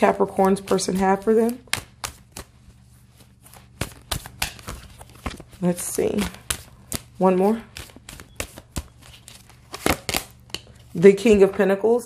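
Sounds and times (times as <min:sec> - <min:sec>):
cards being shuffled: 0:00.1 - 0:11.6.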